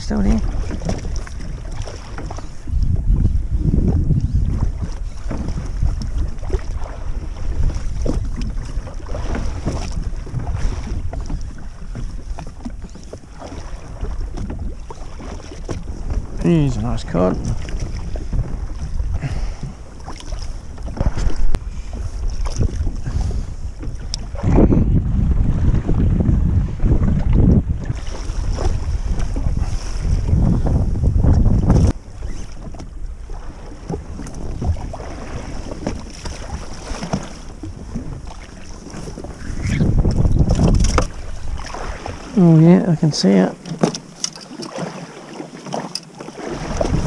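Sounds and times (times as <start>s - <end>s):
wind buffeting microphone: 0.0s - 44.9s, 46.4s - 47.0s
water sloshing against hull: 0.0s - 47.0s.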